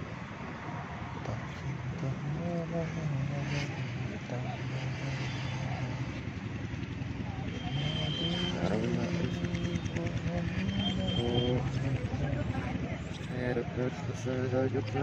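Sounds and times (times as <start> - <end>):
person chanting in long notes: 7.5 - 15.0
thin high whistle-like tone: 10.6 - 11.9.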